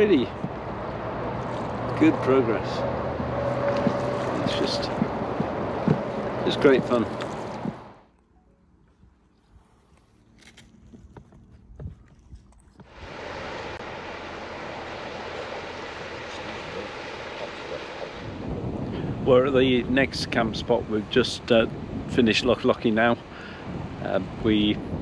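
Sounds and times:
wind rushing over microphone: 0.0 - 8.0, 12.9 - 25.0.

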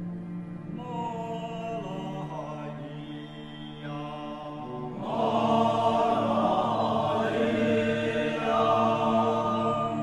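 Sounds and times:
group chanting droning chord: 1.5 - 10.0.

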